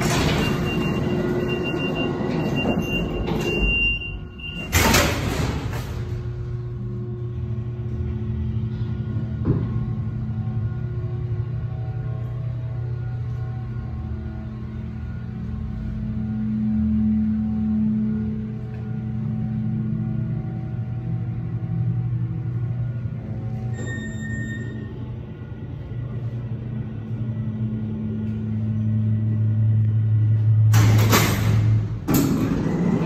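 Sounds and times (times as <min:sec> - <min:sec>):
elevator machinery humming: 0:00.0 - 0:33.0
high electronic beep: 0:00.2 - 0:04.8, 0:23.7 - 0:25.0.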